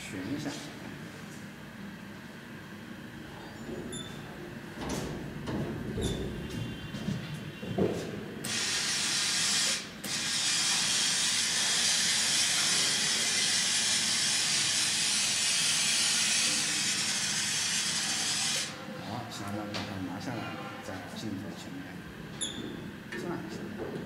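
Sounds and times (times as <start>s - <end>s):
hiss of compressed air spraying: 8.5s - 18.7s.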